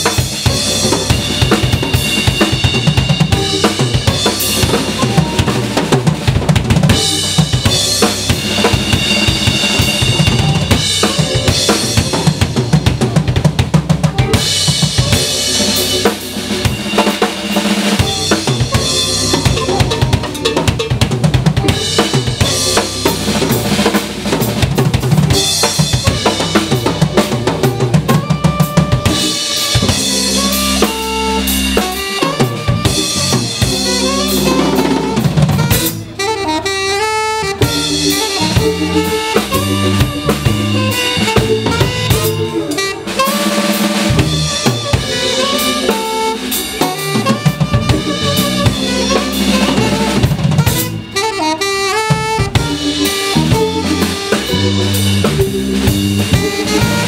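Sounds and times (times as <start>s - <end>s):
drum kit: 0.0s - 57.0s
electric bass: 0.0s - 57.0s
electric guitar: 0.0s - 57.0s
saxophone melody: 0.0s - 57.0s.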